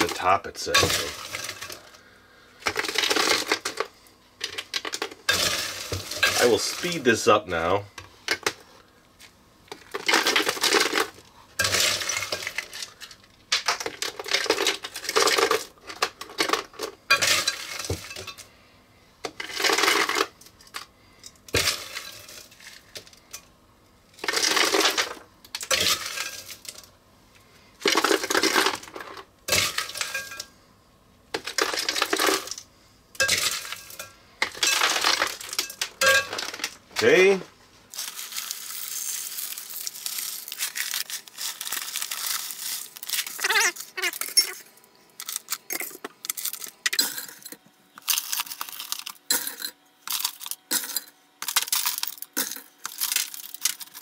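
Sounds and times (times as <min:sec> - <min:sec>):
ice cubes clattering into plastic bucket: 0:00.0 - 0:02.0, 0:02.6 - 0:07.4, 0:09.7 - 0:18.4, 0:19.3 - 0:20.9, 0:21.5 - 0:23.1, 0:24.2 - 0:26.9, 0:27.8 - 0:30.4, 0:31.4 - 0:32.6, 0:33.2 - 0:37.3, 0:37.9 - 0:44.6, 0:45.2 - 0:54.0.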